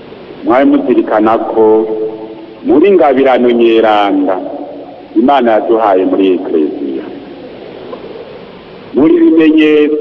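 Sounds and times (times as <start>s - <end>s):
steady hiss: 0.0s - 10.0s.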